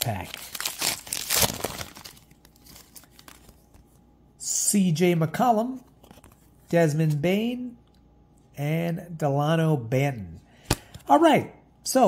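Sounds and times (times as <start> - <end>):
trading cards rustling: 0.0 - 4.0.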